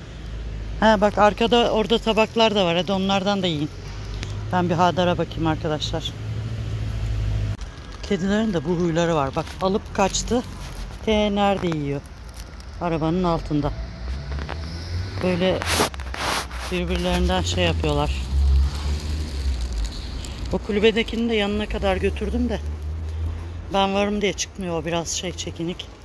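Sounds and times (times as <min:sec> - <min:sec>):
vehicle engine rumbling: 0:00.0 - 0:26.0.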